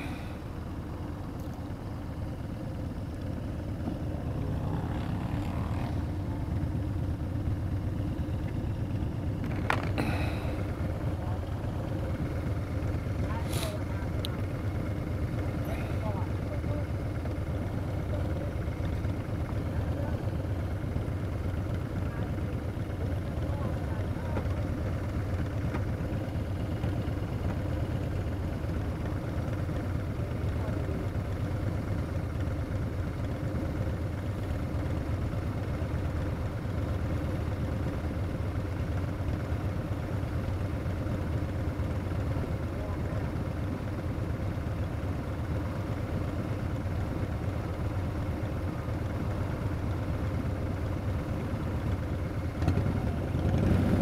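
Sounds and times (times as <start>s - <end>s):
motorcycles idling: 0.0s - 54.0s.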